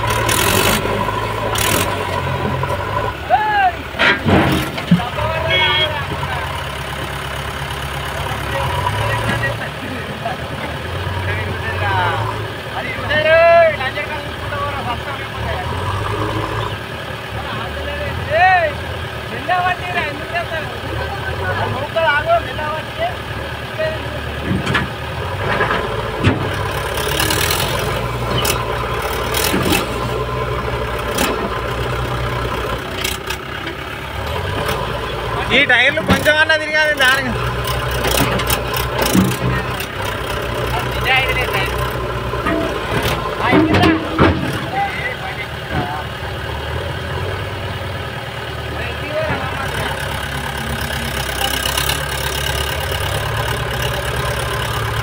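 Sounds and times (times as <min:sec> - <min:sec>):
diesel engines under heavy load: 0:00.0 - 0:55.0
voices calling out: 0:00.0 - 0:55.0.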